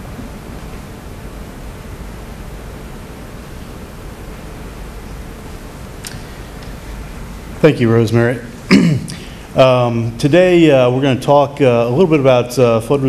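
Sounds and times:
steady room tone hiss: 0:00.0 - 0:13.0.

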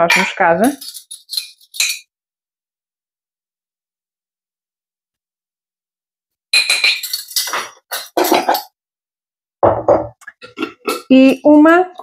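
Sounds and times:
glass jars and spoon clinking: 0:00.0 - 0:02.1, 0:06.6 - 0:08.8.

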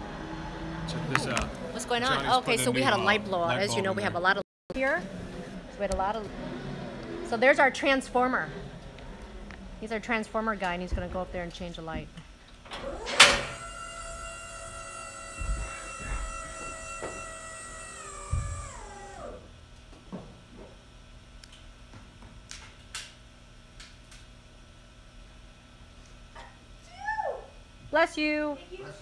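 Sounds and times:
lift motor whine: 0:00.0 - 0:19.7
lift starting knock: 0:12.7 - 0:19.4.

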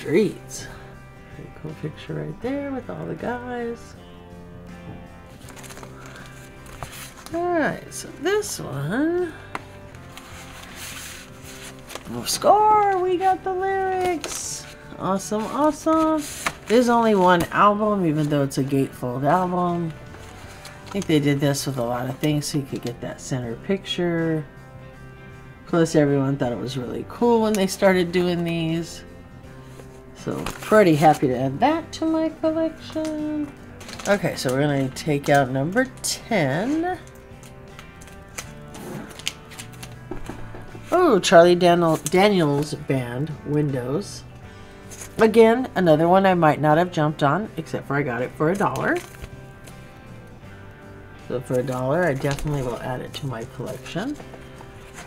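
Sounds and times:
quiet background music: 0:00.0 - 0:55.0
paper sleeve rustling: 0:05.3 - 0:07.4, 0:09.4 - 0:18.5, 0:19.5 - 0:21.7, 0:29.6 - 0:31.6, 0:32.8 - 0:42.8, 0:48.5 - 0:49.9, 0:51.4 - 0:55.0.

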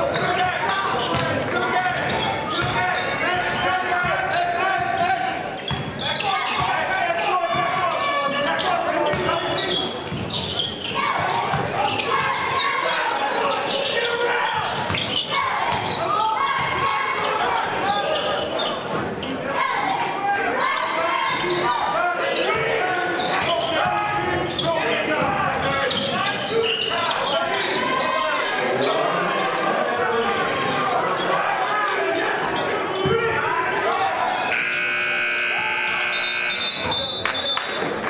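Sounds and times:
electric buzzer: 0:34.5 - 0:36.9.

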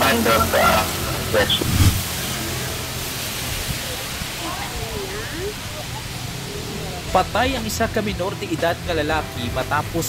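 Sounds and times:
rushing outdoor noise: 0:00.0 - 0:10.0.

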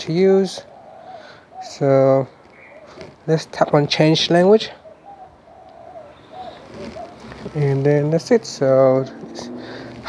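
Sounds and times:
faint bird cooing: 0:00.0 - 0:03.5, 0:04.2 - 0:08.1, 0:08.8 - 0:10.0.

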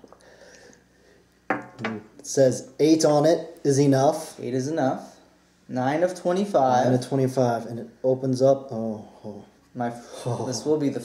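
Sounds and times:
man speaking: 0:01.8 - 0:11.0.

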